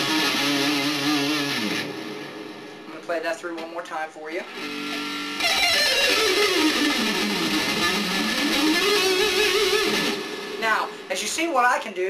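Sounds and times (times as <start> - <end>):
electric guitar shred run: 0.0 - 2.9, 4.4 - 11.1.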